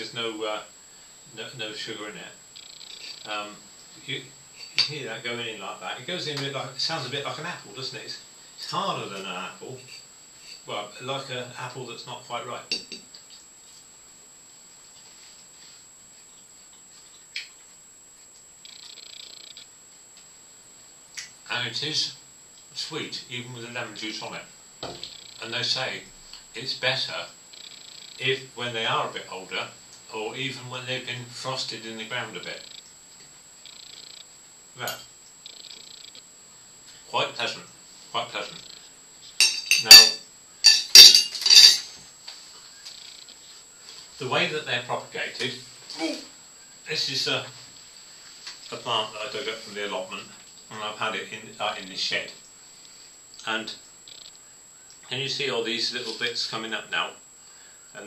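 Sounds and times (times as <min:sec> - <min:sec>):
cutlery clinking against dish: 0:12.7 - 0:13.0, 0:39.4 - 0:41.9.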